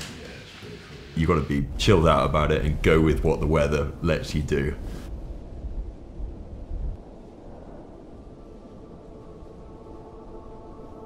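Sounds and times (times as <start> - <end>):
low rumble: 1.2 - 11.0
ambient background music chord: 8.2 - 11.0.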